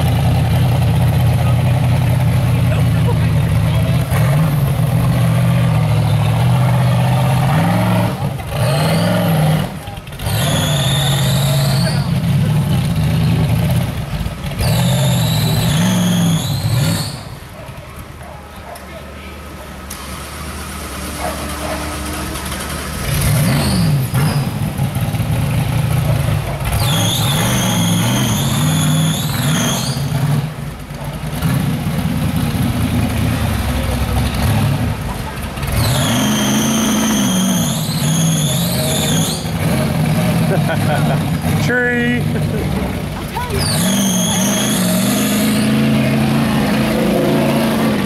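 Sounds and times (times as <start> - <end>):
buggy engine revving hard: 0.0 - 17.6, 19.9 - 48.0
high squeal: 10.3 - 12.2, 14.6 - 17.4, 26.7 - 30.3, 35.8 - 39.6, 43.5 - 46.2.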